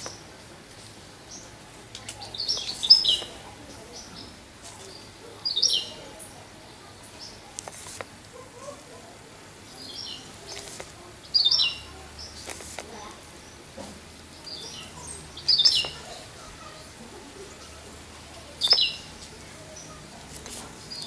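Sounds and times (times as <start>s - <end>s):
bird chirping: 1.2s - 7.5s, 9.6s - 13.7s, 14.3s - 20.0s, 20.8s - 21.0s.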